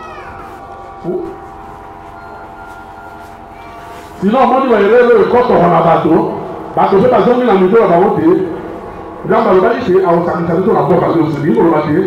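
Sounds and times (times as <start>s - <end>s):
sustained chord of steady tones: 0.0s - 12.0s.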